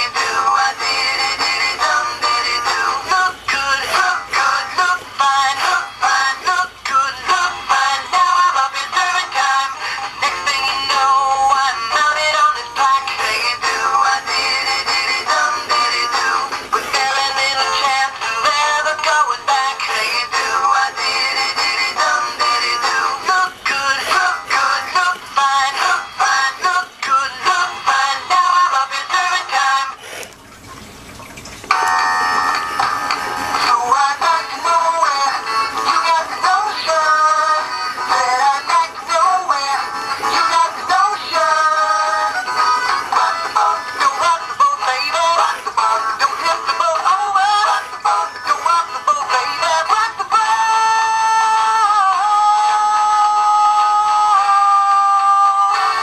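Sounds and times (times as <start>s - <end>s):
toy singing fish pop song: 0.0s - 30.3s, 31.7s - 56.0s.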